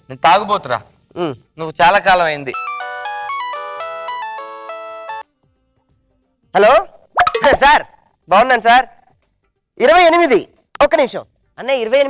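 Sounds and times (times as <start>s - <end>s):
phone ringtone melody: 2.5s - 5.2s.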